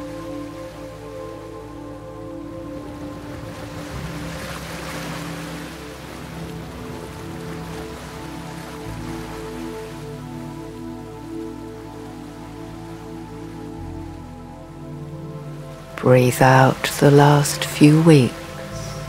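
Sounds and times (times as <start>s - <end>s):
ambient music of held chords: 0.0s - 19.0s
water noise: 0.0s - 19.0s.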